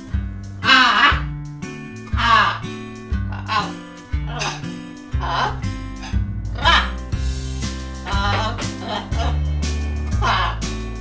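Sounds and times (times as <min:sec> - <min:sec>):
background music: 0:00.0 - 0:11.0
macaw squawk: 0:00.6 - 0:01.3, 0:02.1 - 0:07.0, 0:08.0 - 0:09.5, 0:10.1 - 0:10.8.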